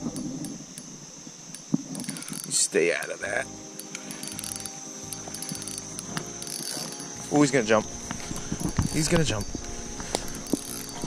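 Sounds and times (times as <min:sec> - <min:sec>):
fishing reel whirring and clicking: 0:00.0 - 0:11.0.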